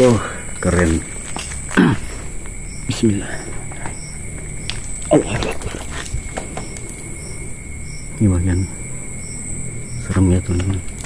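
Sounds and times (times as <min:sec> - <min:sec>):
night insects droning: 0:00.0 - 0:11.0
twigs snapping: 0:03.6 - 0:07.2, 0:10.1 - 0:11.0
dull thump: 0:05.4 - 0:06.8.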